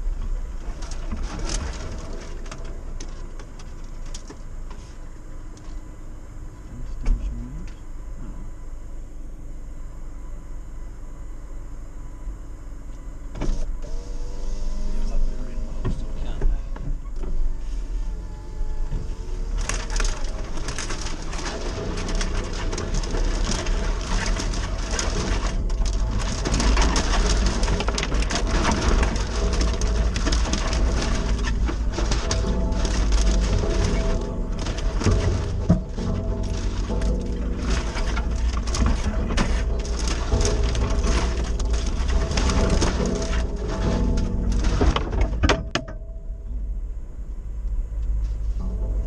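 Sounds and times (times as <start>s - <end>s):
vehicle knocks and rattles: 0.0s - 5.7s, 18.7s - 46.7s
tyres crackling on stony ground: 0.0s - 7.8s, 14.9s - 45.9s
engine rumbling at low revs: 0.0s - 49.0s.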